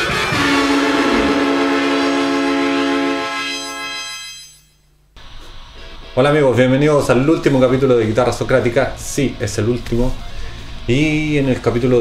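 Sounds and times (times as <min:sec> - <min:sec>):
electric guitar chord ringing: 0:00.1 - 0:04.6.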